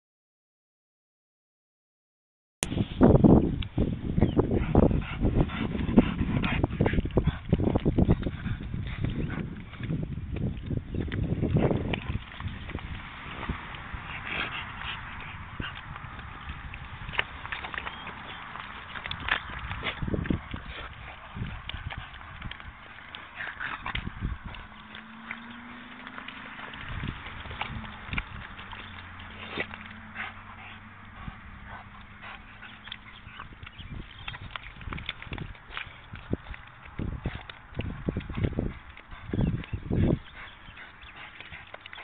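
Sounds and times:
dog thrashing in wet mud: 4.9s - 42.0s.

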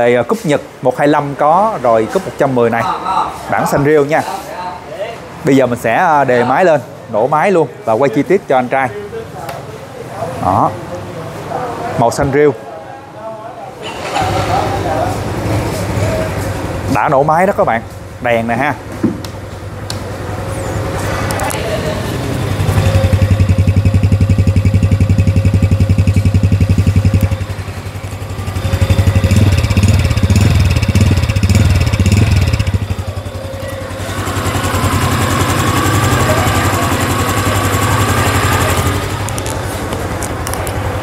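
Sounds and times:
motorcycle engine running: 15.3s - 41.0s.

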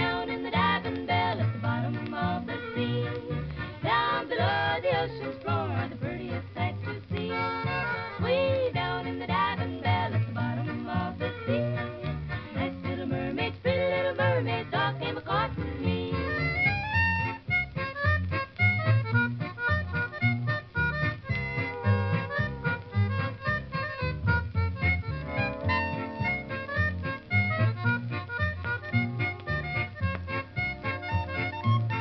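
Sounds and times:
country band instrumental: 0.0s - 32.0s.

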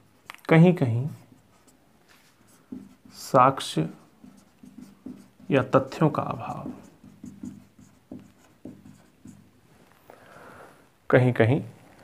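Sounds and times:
marker writing on whiteboard: 0.0s - 9.9s.

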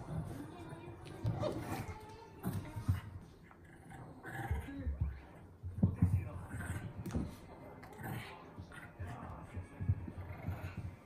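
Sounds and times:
small dog growling: 1.2s - 5.3s, 7.8s - 11.0s.

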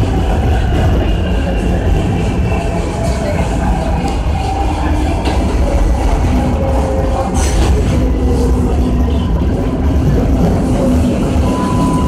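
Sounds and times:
subway car rumble: 0.0s - 12.0s.

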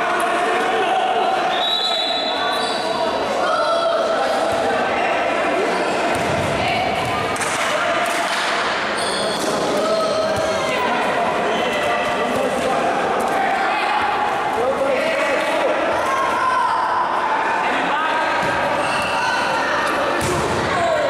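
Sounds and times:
players shouting in echoing hall: 0.0s - 21.0s.

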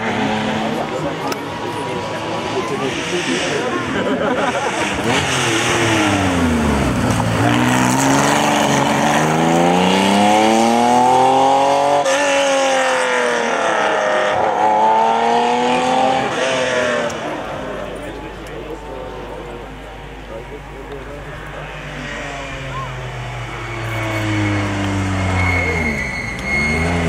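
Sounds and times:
rally car engine revving: 0.0s - 27.0s.

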